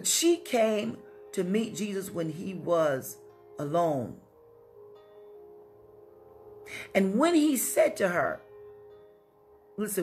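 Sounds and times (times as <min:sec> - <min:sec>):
soft music of ringing tones: 0:00.2 - 0:10.0.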